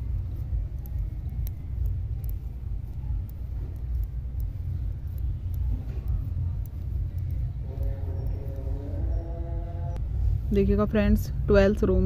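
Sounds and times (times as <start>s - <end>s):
metal knitting needles clicking: 0.0s - 9.3s
low uneven rumble: 0.0s - 12.0s.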